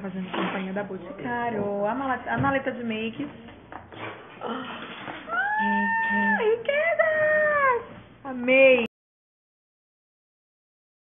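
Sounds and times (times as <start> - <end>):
high-pitched squealing cries: 5.3 - 6.4.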